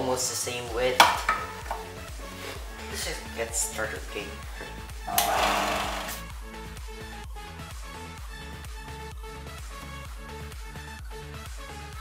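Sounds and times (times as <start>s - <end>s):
belt sander rasping hiss: 5.1s - 6.2s.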